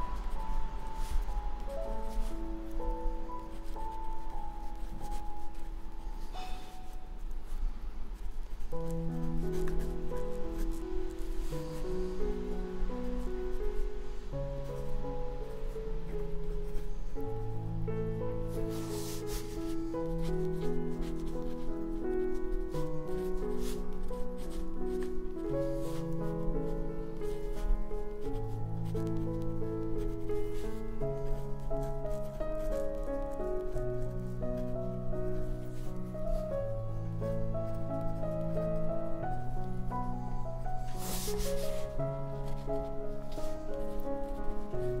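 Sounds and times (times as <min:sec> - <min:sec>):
pen nib scratching on paper: 0:00.0 - 0:12.2, 0:18.6 - 0:36.5, 0:40.8 - 0:45.0
piano music: 0:00.0 - 0:45.0.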